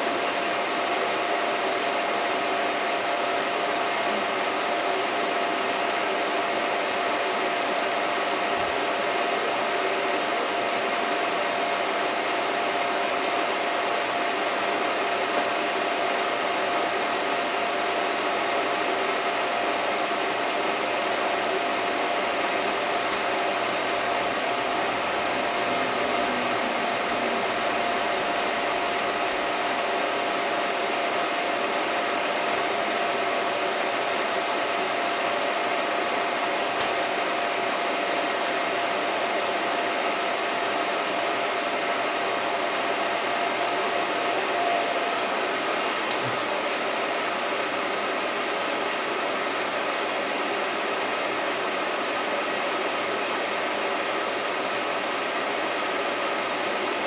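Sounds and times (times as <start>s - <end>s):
film projector whirring: 0.0s - 57.0s
constant high hum: 20.7s - 33.0s.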